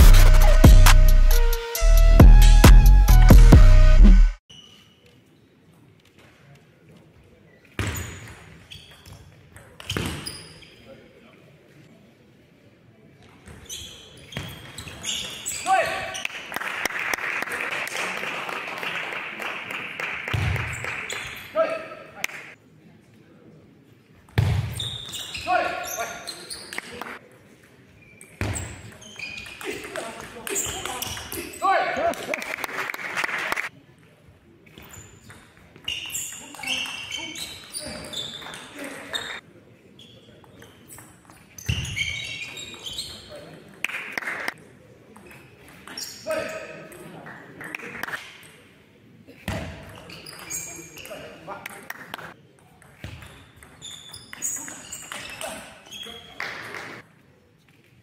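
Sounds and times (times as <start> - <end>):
voices of players and spectators: 4.5 - 58.0.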